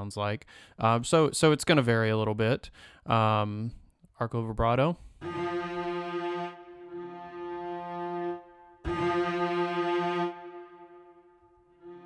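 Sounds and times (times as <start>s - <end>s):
bowed cello note: 5.2s - 12.0s.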